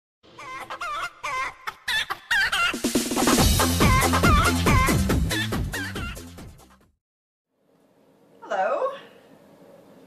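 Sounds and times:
hen clucking: 0:00.4 - 0:02.8
electronic music: 0:03.2 - 0:06.7.

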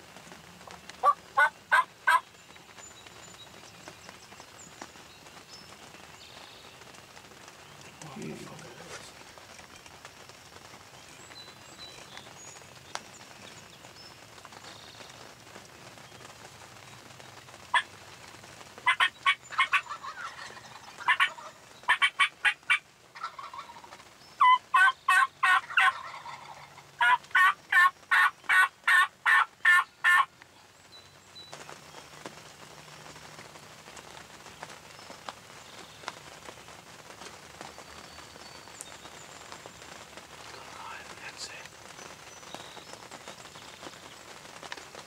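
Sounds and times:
turkey yelping: 0:01.0 - 0:02.2, 0:18.8 - 0:30.3.

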